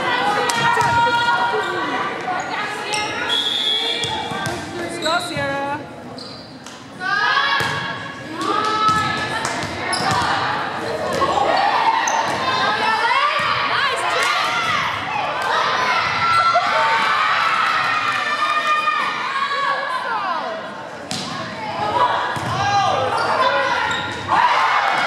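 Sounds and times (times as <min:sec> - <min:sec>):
players shouting: 0:21.8 - 0:25.0.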